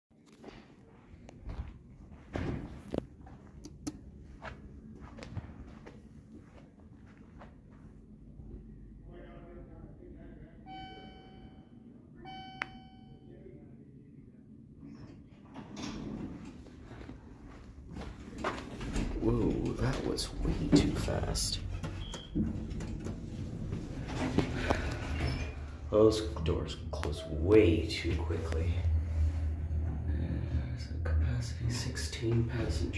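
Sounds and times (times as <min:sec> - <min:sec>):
footsteps on carpet: 0:00.4 - 0:03.6, 0:04.2 - 0:07.9
steady low hum: 0:00.4 - 0:32.9
short high beep: 0:10.7 - 0:11.7, 0:12.3 - 0:13.3
elevator doors sliding: 0:15.4 - 0:17.2, 0:17.9 - 0:32.9
elevator machinery: 0:15.5 - 0:32.9.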